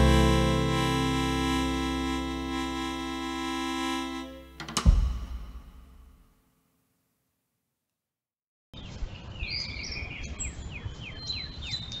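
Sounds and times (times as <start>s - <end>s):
birds singing: 8.8s - 12.0s.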